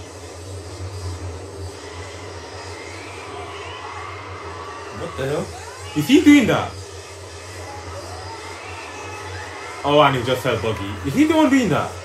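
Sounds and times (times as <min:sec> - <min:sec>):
steady low hum: 0:00.0 - 0:12.0
man speaking: 0:05.0 - 0:06.8, 0:09.9 - 0:11.9.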